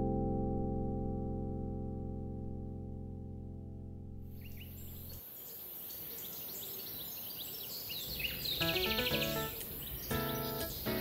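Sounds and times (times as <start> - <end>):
music: 0.0 - 4.3, 8.6 - 11.0
birds chirping: 4.3 - 11.0.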